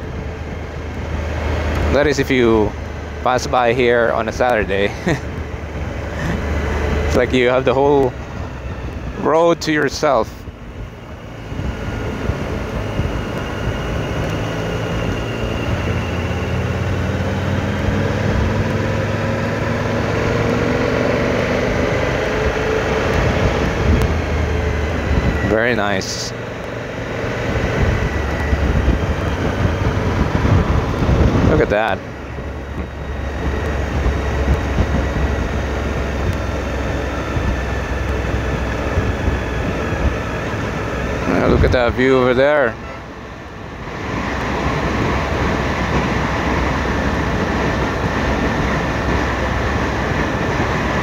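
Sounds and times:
motorcycle engine cruising: 0.0 - 51.0
wind and road noise: 0.0 - 51.0.

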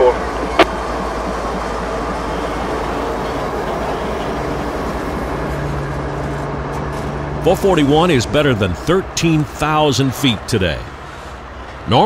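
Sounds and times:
freight train rumbling past: 0.0 - 12.0
steady low hum: 0.0 - 12.0.

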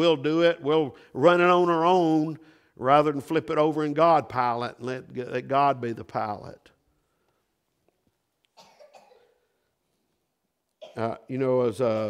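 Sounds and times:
faint cough: 8.6 - 9.5, 10.8 - 11.2.

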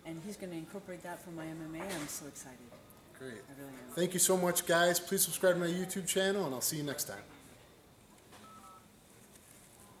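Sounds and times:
faint two-tone electronic beep: 8.4 - 8.9.

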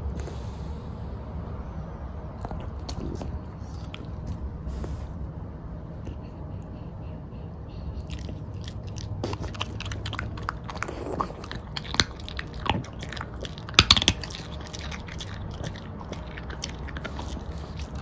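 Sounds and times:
dog chewing with wet smacks: 7.9 - 18.0.

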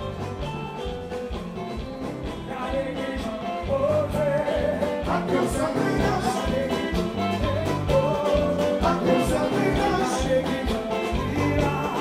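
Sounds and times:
bass: 0.0 - 12.0
live band music: 0.0 - 12.0
steady drum beat: 0.0 - 12.0.

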